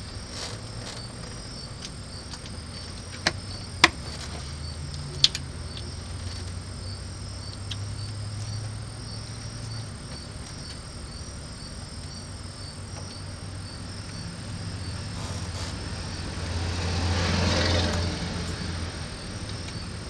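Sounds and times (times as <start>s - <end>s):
insects chirping: 0.0s - 20.0s
vehicle passing: 13.4s - 20.0s.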